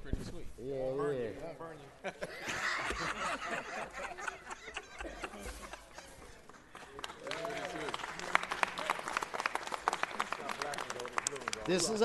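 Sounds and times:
group of people laughing: 2.0s - 6.5s.

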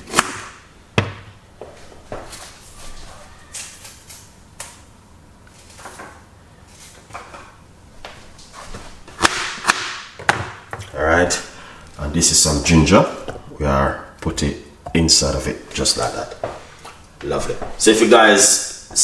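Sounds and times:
knocks in kitchen: 1.0s - 1.4s.

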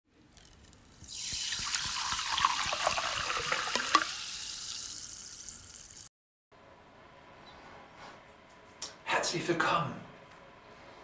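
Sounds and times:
water pouring into a glass: 0.4s - 6.1s.

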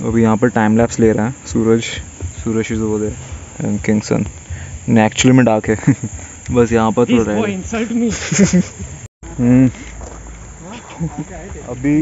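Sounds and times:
people talking: 0.0s - 4.3s, 4.9s - 9.9s, 10.6s - 12.0s
crickets chirping: 0.0s - 12.0s.

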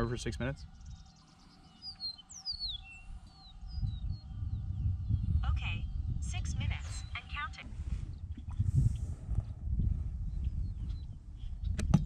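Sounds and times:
birds chirping and whistling: 0.0s - 12.0s
low rumble: 2.8s - 11.5s.

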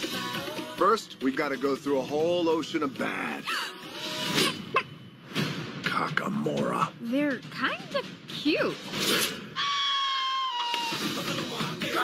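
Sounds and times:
cartoon creature shrieking: 9.6s - 11.1s.

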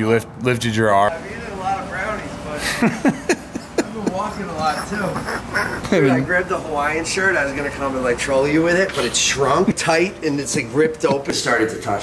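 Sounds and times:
men talking: 0.0s - 12.0s
men laughing: 2.5s - 6.6s.

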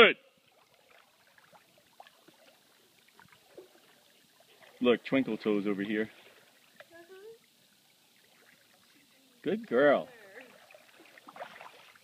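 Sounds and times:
small water splashes: 0.3s - 12.0s.

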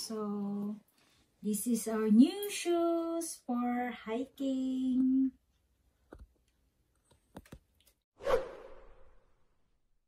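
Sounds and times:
whoosh transition effect: 8.2s - 9.2s.

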